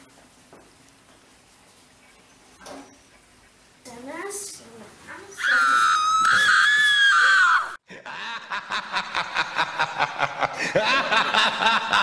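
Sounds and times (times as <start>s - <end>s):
high-pitched scream: 5.4s - 7.8s.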